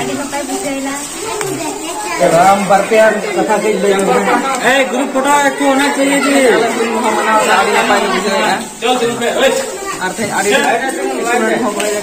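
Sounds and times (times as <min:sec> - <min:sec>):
young men talking: 0:01.2 - 0:12.0.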